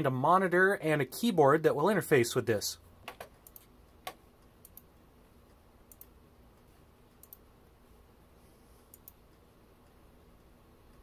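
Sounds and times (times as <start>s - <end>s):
computer mouse clicks: 3.1s - 4.9s, 5.5s - 7.5s, 8.9s - 10.0s.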